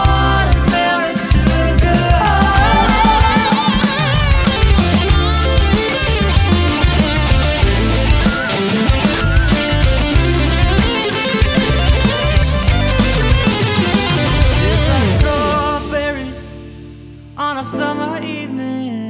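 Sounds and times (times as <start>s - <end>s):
drums: 0.0s - 17.5s
bass: 0.0s - 17.9s
electric guitar lead with bent notes: 1.5s - 17.2s.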